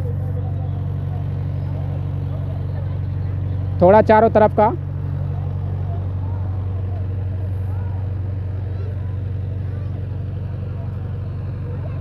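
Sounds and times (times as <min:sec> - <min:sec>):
faint voices: 0:00.0 - 0:12.0
low engine drone: 0:00.0 - 0:12.0.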